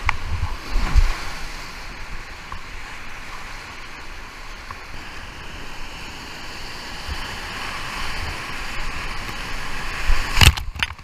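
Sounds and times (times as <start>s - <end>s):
water splashing on kayak: 0.0s - 11.0s.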